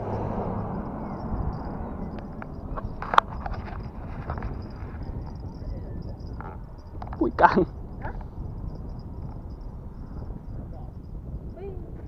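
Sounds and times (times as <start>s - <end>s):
wind buffeting microphone: 0.0s - 12.0s
faint voices: 4.6s - 8.2s.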